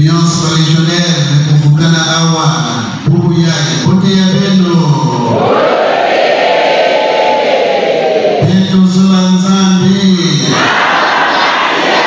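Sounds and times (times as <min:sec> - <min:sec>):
many voices singing a response: 0:05.3 - 0:08.5, 0:10.5 - 0:12.0.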